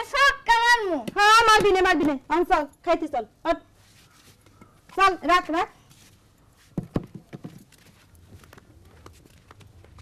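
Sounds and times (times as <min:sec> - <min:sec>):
footsteps on hard earth: 0:05.9 - 0:10.0.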